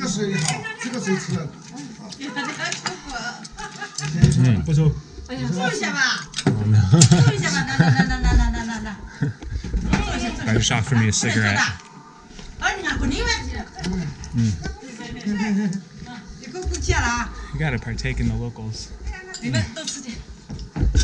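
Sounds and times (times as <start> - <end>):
people talking: 2.2 - 11.8, 12.6 - 20.2
laughter: 2.4 - 4.2, 6.9 - 9.4.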